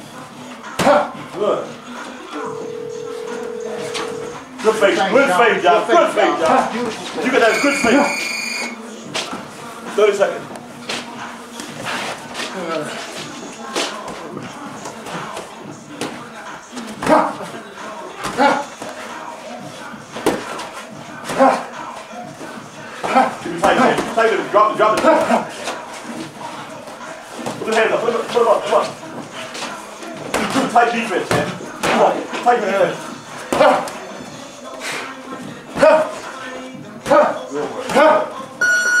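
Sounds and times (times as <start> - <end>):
electronic buzzer tone: 2.6 - 4.4, 7.5 - 8.8, 38.6 - 39.0
boxing thuds and shuffling: 9.0 - 17.6, 18.2 - 32.6.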